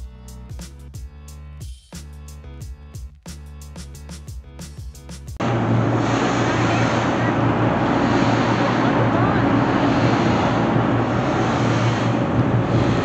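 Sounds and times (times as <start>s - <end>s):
ferry engine low drone: 5.4s - 13.0s
wind buffeting microphone: 5.4s - 13.0s.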